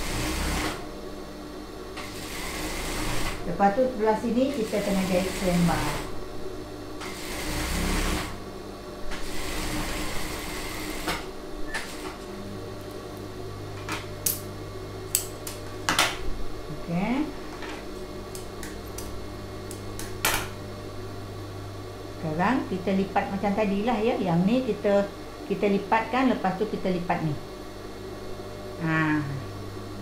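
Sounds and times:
industrial sewing machine stitching: 0:00.0 - 0:00.8, 0:02.0 - 0:03.4, 0:04.5 - 0:06.1, 0:07.0 - 0:08.4, 0:09.2 - 0:11.2
low motor hum: 0:00.0 - 0:30.0.

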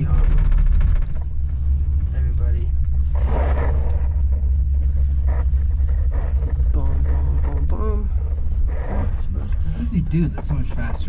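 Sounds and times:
gondola cabin rumble: 0:00.0 - 0:11.0.

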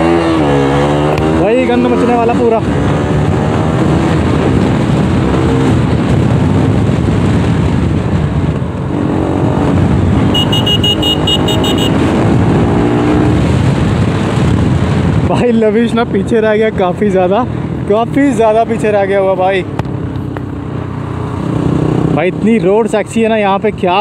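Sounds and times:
motorcycle engine: 0:00.0 - 0:15.2
road noise: 0:00.0 - 0:24.0
high electronic beeps: 0:10.4 - 0:12.0.

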